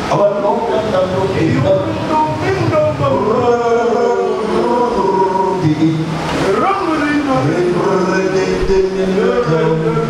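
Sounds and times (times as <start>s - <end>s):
congregation singing: 0.0s - 10.0s
man singing into microphone: 0.0s - 10.0s.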